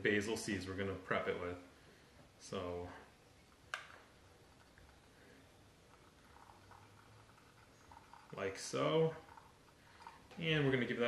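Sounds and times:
water trickling into teapot: 0:05.8 - 0:10.3.

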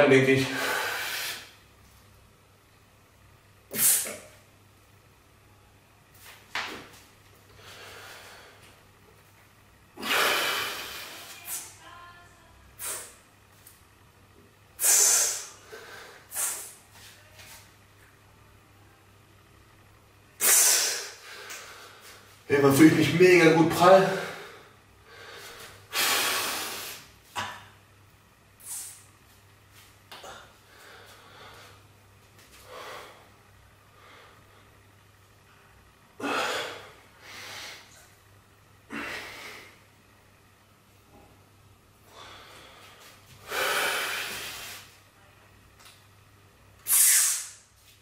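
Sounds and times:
man breathing hard: 0:00.4 - 0:01.6, 0:07.5 - 0:08.8, 0:10.0 - 0:11.3, 0:14.8 - 0:16.8, 0:24.0 - 0:27.1, 0:30.1 - 0:31.8, 0:32.6 - 0:34.8, 0:36.2 - 0:38.1, 0:38.9 - 0:39.9, 0:42.0 - 0:44.9.

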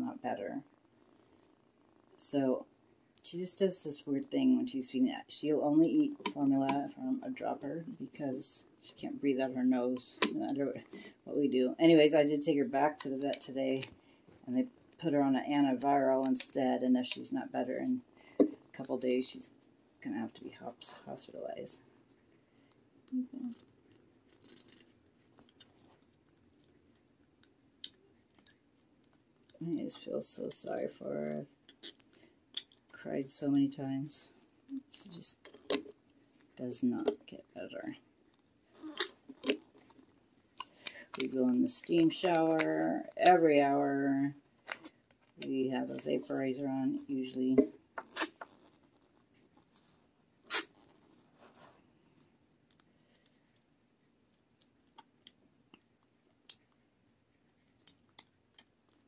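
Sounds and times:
faint soft clicks and rustles: 0:00.0 - 0:59.0.

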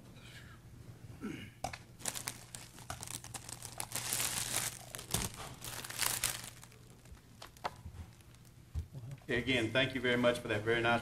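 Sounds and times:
crinkling rustling handling noise: 0:02.0 - 0:08.6.

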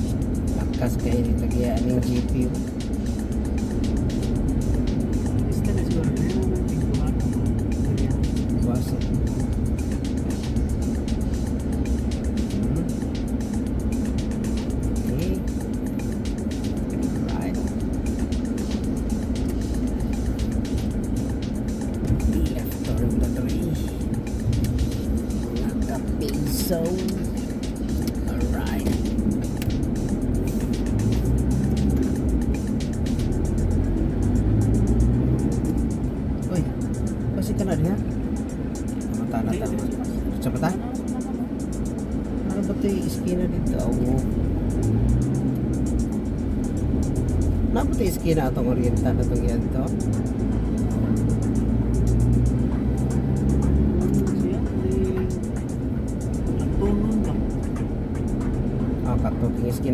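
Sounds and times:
background music: 0:00.0 - 0:59.9
vehicle engine and tyre rumble: 0:00.0 - 0:59.9.

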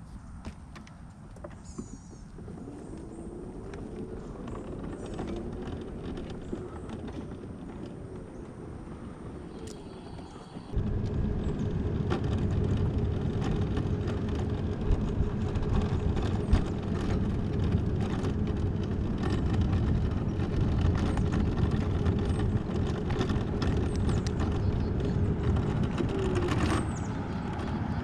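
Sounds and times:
frame and wheels rattling: 0:00.4 - 0:28.0
mobility scooter motor hum: 0:00.7 - 0:28.0.

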